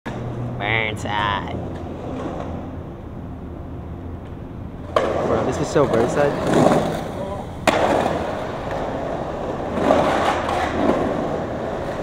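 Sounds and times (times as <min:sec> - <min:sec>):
city traffic rumble: 0:00.1 - 0:12.0.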